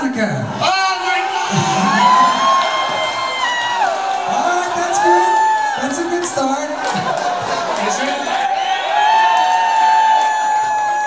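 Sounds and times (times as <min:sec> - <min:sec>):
crowd cheering: 0:00.4 - 0:11.0
person cheering high: 0:00.6 - 0:05.9.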